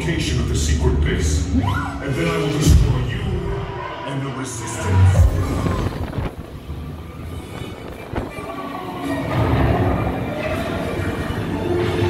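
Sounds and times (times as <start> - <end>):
music: 0.0 - 12.0
low rumbling: 4.8 - 11.6.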